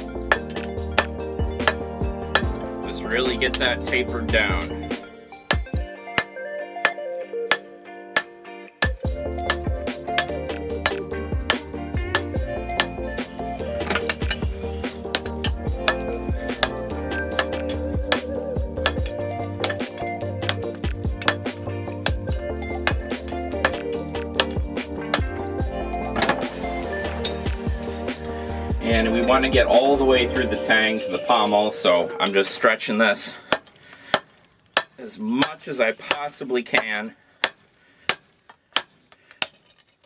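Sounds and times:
background music: 0.0s - 35.9s
hammer on hot steel and anvil: 0.2s - 2.6s, 5.5s - 13.1s, 15.1s - 25.4s, 33.5s - 39.7s.

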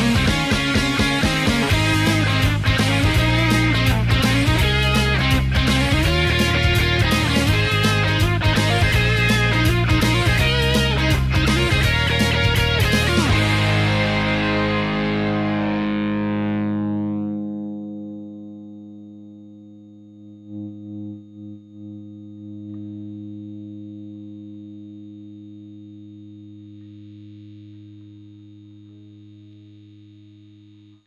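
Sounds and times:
distorted electric guitar chord ringing: 0.0s - 31.0s.

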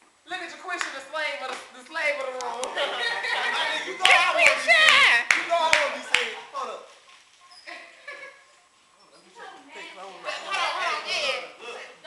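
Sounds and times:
teenagers' excited voices: 2.0s - 6.8s, 9.6s - 11.8s
hand claps: 4.0s - 6.4s.

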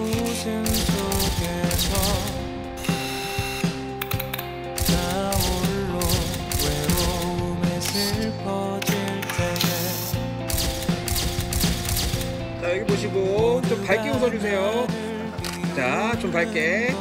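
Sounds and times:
background music: 0.0s - 17.0s
camera shutter clicks: 0.2s - 8.2s, 8.8s - 12.4s.

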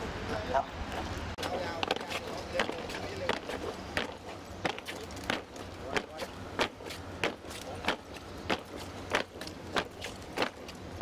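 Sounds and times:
boots marching on pavement: 0.9s - 11.0s.

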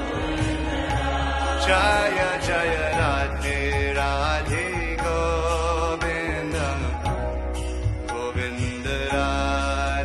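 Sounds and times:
instrumental accompaniment: 0.0s - 10.0s.

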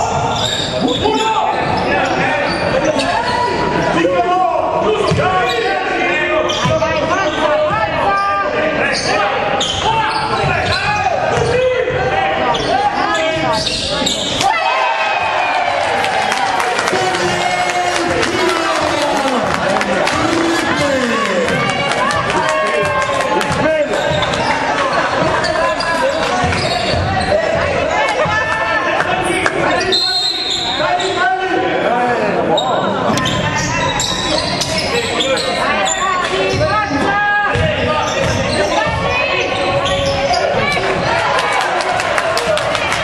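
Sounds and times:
people shouting: 14.4s - 25.8s
basketball bouncing on wooden court: 37.5s - 39.2s.

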